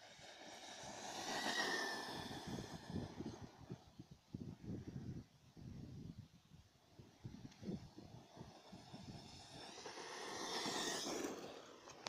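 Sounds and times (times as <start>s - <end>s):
tyres on dirt: 7.4s - 12.0s.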